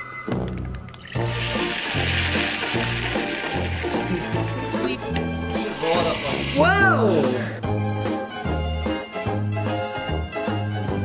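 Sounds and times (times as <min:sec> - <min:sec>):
bouncy background music: 0:00.0 - 0:11.0
juice squirting into glass: 0:00.8 - 0:04.5.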